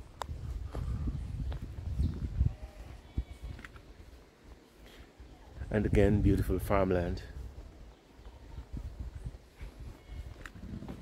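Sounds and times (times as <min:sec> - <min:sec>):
wind rumble on microphone: 0:00.0 - 0:04.2, 0:05.5 - 0:11.0
footsteps on paved road: 0:00.0 - 0:11.0
short scuffs and clicks: 0:03.4 - 0:03.9, 0:10.2 - 0:10.9.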